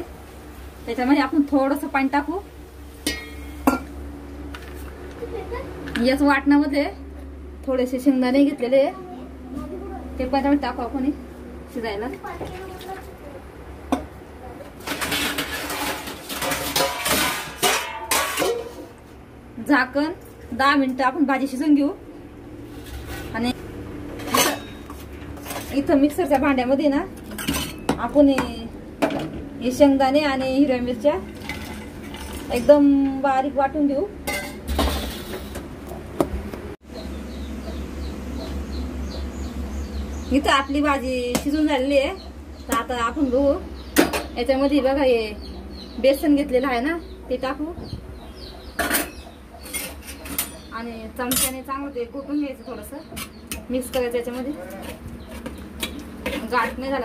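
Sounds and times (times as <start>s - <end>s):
metal kitchen vessels clinking: 3.0s - 4.0s, 13.9s - 19.1s, 22.8s - 33.2s, 34.2s - 35.7s, 43.9s - 45.0s, 48.4s - 57.0s.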